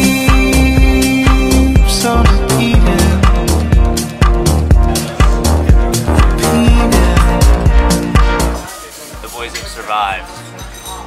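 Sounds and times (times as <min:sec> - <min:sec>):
background music: 0:00.0 - 0:11.0
people's voices: 0:04.7 - 0:07.6.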